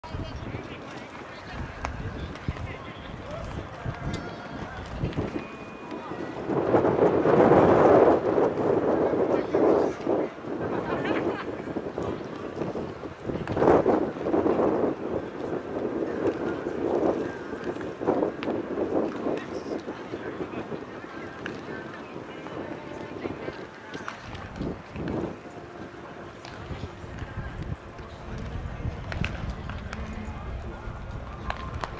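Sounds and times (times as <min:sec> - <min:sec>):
people talking: 0:00.0 - 0:31.9
wind noise on microphone: 0:00.0 - 0:31.9.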